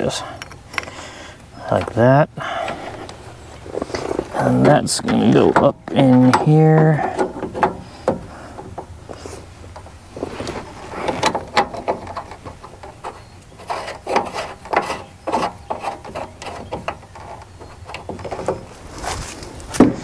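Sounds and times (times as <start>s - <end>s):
small metal clicks and knocks: 2.7s - 10.0s, 11.0s - 18.7s.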